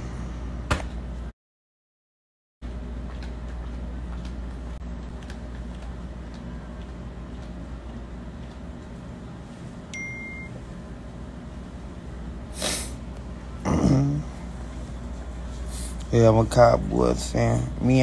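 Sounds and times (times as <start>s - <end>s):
low indoor hum: 0.0s - 1.3s, 2.6s - 18.0s.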